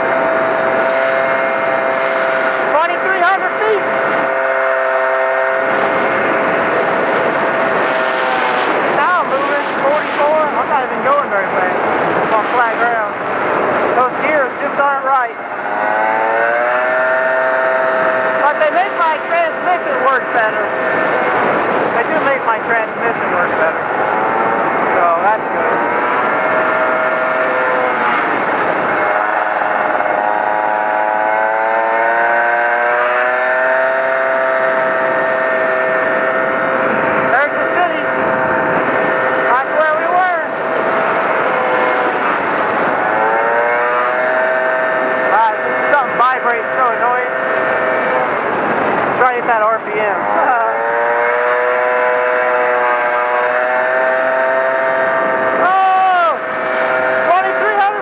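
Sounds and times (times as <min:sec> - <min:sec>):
moped engine running: 0:00.0 - 0:58.0
wind and road noise: 0:00.0 - 0:58.0.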